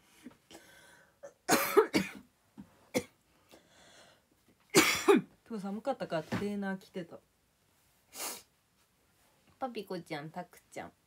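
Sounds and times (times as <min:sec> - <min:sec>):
woman coughing: 0:01.2 - 0:02.2, 0:04.8 - 0:05.3.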